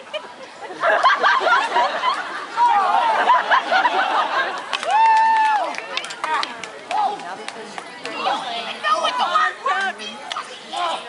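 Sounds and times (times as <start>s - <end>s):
overlapping voices: 0.6s - 11.0s.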